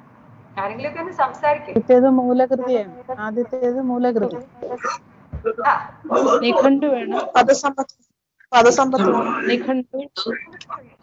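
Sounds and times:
woman lecturing: 0.6s - 1.8s, 5.5s - 7.6s, 8.6s - 10.4s.

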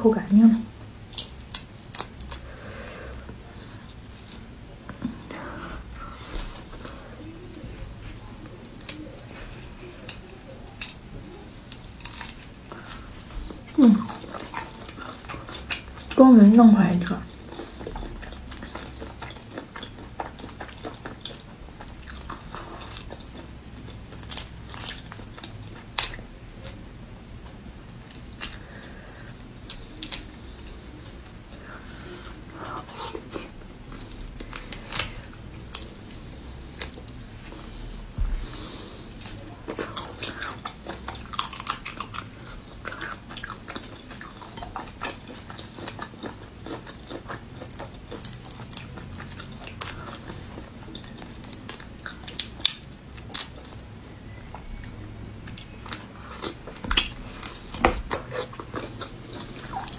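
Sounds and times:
shrimp shell peeling crackles: 33.1s - 37.2s.

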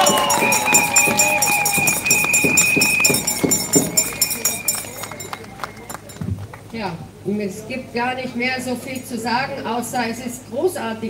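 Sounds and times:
long high whistle: 0.0s - 6.2s
crowd clapping and cheering: 0.0s - 6.8s.

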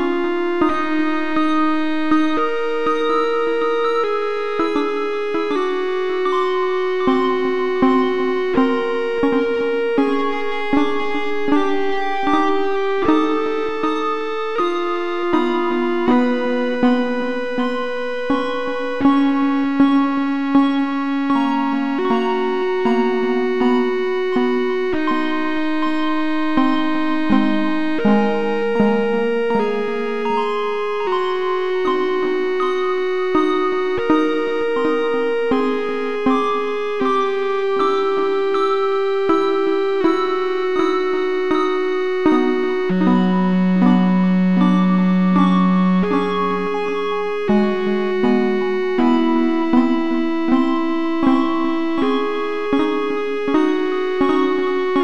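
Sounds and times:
electric piano chords: 0.0s - 55.0s
synthesized keyboard tones: 1.4s - 55.0s.

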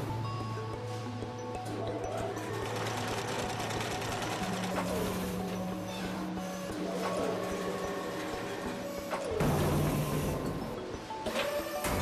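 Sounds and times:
background music: 0.0s - 12.0s
conveyor machinery clattering: 1.5s - 12.0s.

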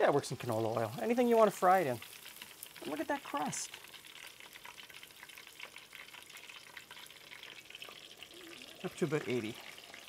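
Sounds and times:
steak sizzling in hot fat: 0.0s - 10.0s.

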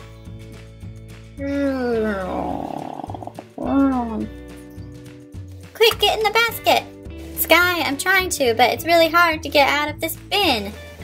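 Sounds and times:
background music: 0.0s - 11.0s
person humming falling mmm: 1.4s - 4.3s.

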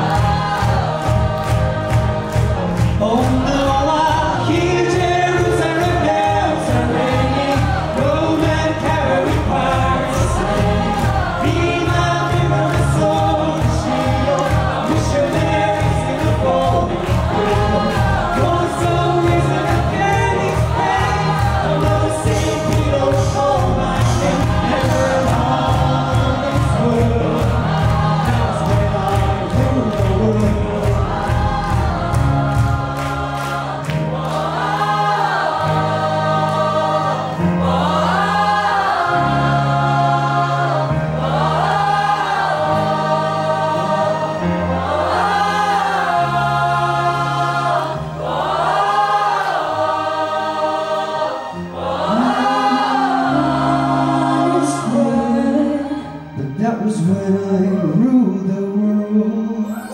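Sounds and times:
fast percussion beat: 0.0s - 33.0s
band accompaniment: 0.0s - 59.9s
group of voices singing: 0.0s - 59.9s.

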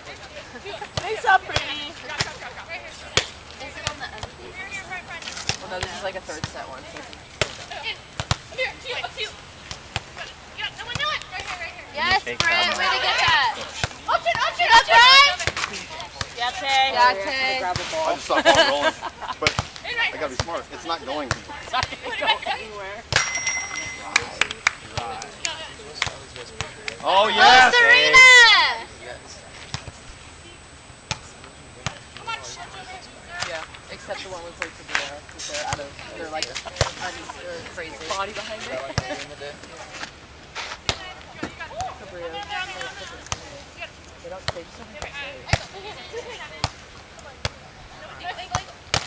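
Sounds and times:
faint voices: 10.1s - 48.8s
hand slapping a volleyball: 23.1s - 27.0s.

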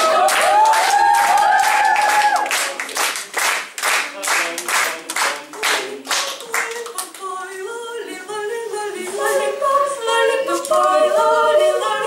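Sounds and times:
audience clapping in a steady beat: 0.0s - 7.3s
women singing unaccompanied: 6.2s - 12.0s.

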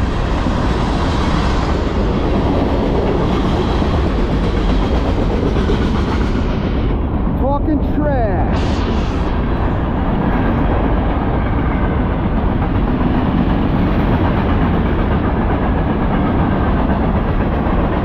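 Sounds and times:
steel wheels rolling on rail: 0.0s - 7.5s, 8.6s - 18.0s
freight train rumbling past: 0.0s - 18.0s.

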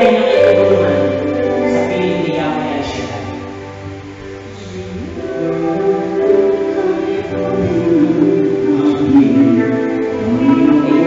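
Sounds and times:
choir singing held chords: 0.0s - 11.0s.

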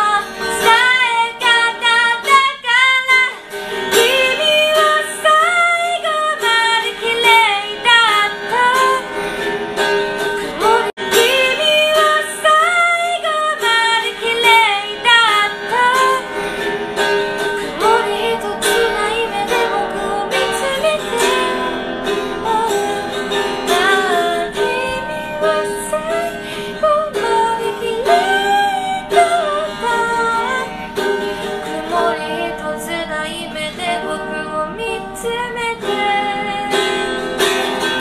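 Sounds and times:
woman singing: 0.0s - 9.3s, 10.2s - 16.7s, 17.4s - 38.0s
acoustic guitar: 0.0s - 38.0s.

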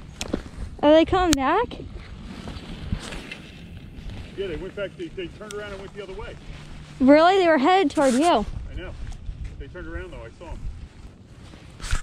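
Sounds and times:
wind rumble on microphone: 0.0s - 12.0s.

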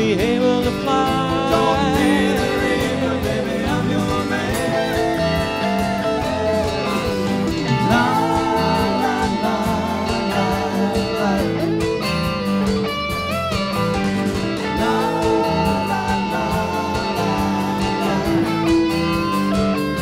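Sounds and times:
bass guitar: 0.0s - 20.0s
electric guitar lines bending: 0.0s - 20.0s
strummed guitar: 0.0s - 20.0s
electronic drums beat: 0.2s - 20.0s.

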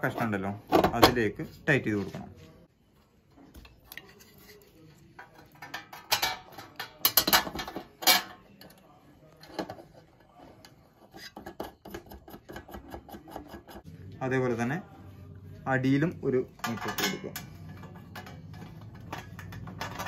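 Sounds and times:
metal clinks and scrapes: 16.6s - 20.0s.

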